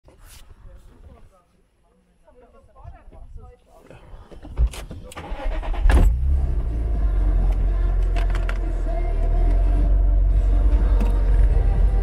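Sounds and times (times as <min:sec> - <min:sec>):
engine cranking: 0:04.4 - 0:09.8
car engine idling: 0:05.2 - 0:12.0.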